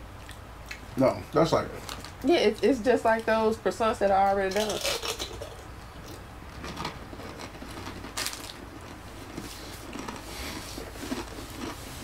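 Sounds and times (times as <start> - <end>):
chewing soft pastry: 0.1 - 2.2, 4.8 - 12.0
food handling clicks and rustles: 4.5 - 12.0.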